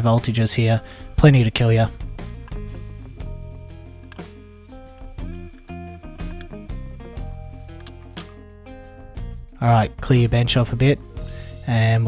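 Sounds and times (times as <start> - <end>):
plucked notes over bass line: 1.2 - 11.4.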